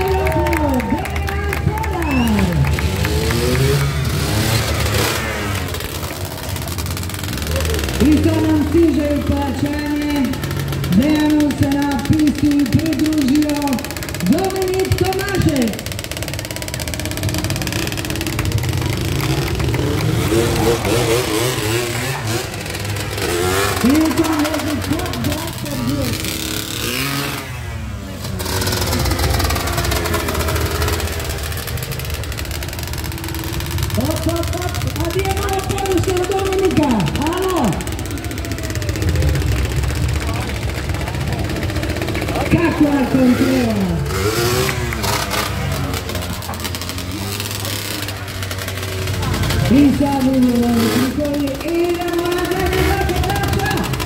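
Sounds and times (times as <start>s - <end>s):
quad bike engine revving: 0.0s - 54.0s.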